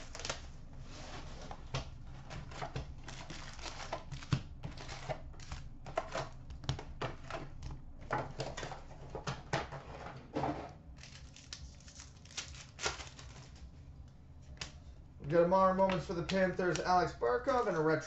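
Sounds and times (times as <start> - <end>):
packaging rustling and crinkling: 0.0 - 9.4, 11.0 - 13.8.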